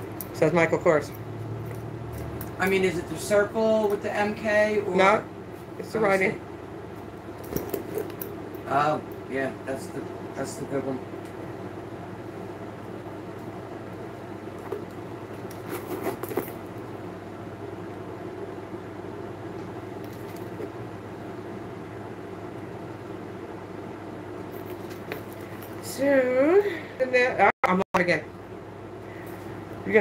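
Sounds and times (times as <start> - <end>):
low background hum: 0.0 - 30.0
handbag rustling and clicking: 7.4 - 8.4, 14.5 - 16.8, 20.0 - 20.7, 24.5 - 25.9.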